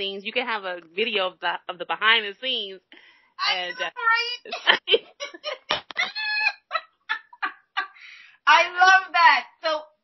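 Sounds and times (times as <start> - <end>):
woman laughing: 3.4 - 8.2.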